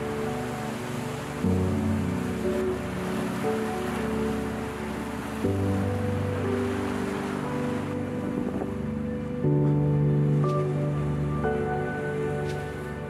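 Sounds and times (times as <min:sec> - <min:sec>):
waves breaking on rocky shore: 0:00.0 - 0:09.4
soft background music: 0:00.0 - 0:13.0.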